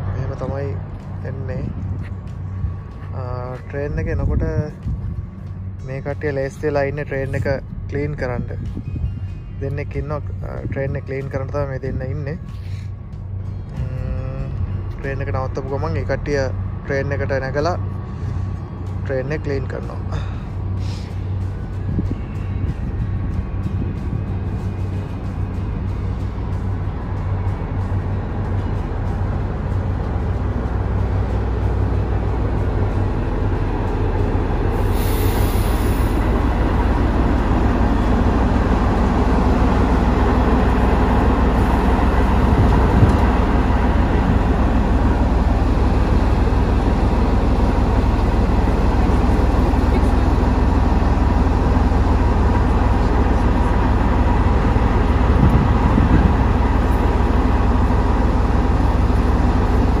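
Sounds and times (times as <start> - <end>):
diesel railcar engine rumbling: 0.0 - 60.0
brief hiss: 34.8 - 36.2.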